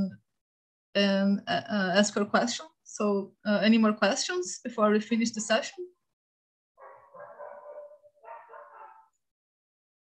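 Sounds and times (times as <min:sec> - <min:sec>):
dog vocalizing: 0:06.8 - 0:09.1.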